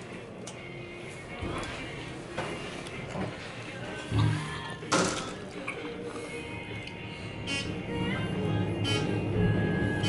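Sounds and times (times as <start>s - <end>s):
room ambience: 0.0s - 10.0s.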